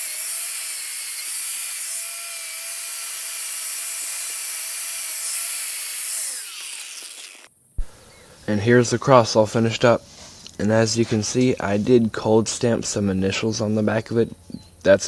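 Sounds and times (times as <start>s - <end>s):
grinder spinning down: 0.0s - 7.5s.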